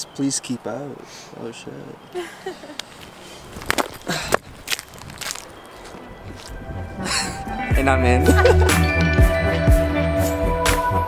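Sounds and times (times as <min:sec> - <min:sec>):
footsteps crunching dry leaves: 0:02.9 - 0:06.6.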